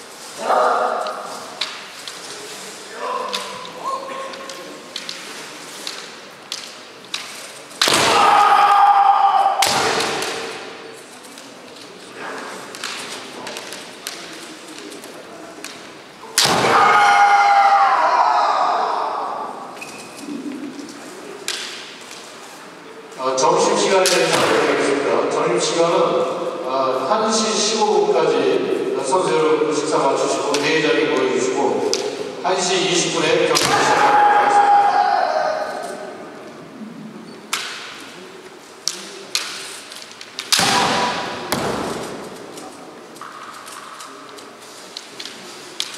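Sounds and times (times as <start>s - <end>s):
bamboo swords clacking: 1.0s - 2.5s, 3.2s - 8.6s, 9.6s - 12.0s, 12.6s - 16.7s, 20.8s - 22.4s, 37.5s - 45.9s
loud high shout: 8.0s - 10.0s, 16.6s - 19.7s, 33.6s - 36.0s.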